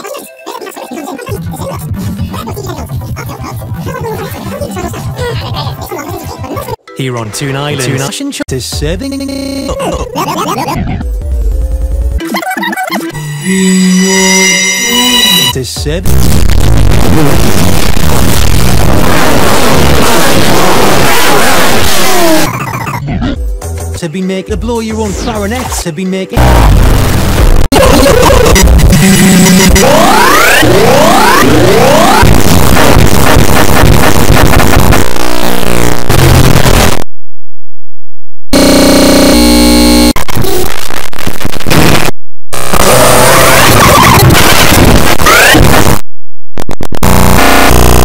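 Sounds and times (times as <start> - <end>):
heavily distorted cartoon soundtrack: 0.0 - 23.6, 24.5 - 37.0, 38.6 - 46.0, 46.9 - 48.0.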